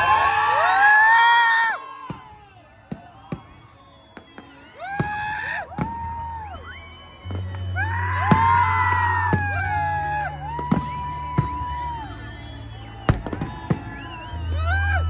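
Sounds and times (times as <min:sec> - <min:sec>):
crowd noise: 0:00.0 - 0:15.0
fireworks bangs: 0:01.8 - 0:06.4, 0:07.2 - 0:14.5
music with bass and gliding tones: 0:06.1 - 0:15.0.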